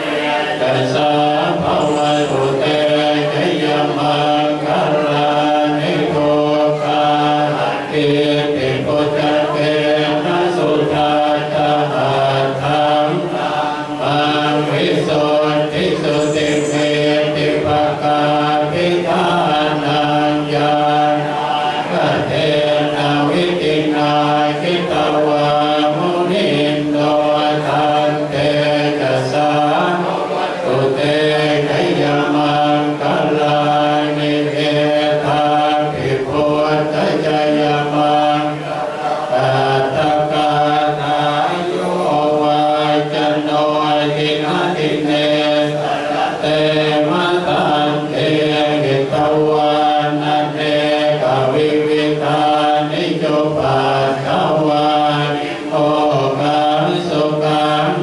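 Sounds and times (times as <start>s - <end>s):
monks chanting in unison: 0.0s - 58.0s.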